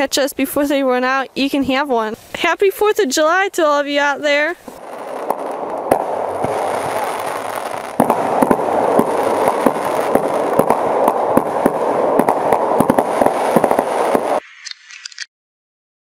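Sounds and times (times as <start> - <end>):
fireworks crackling: 0.0 - 15.3
firework bangs: 4.3 - 14.4.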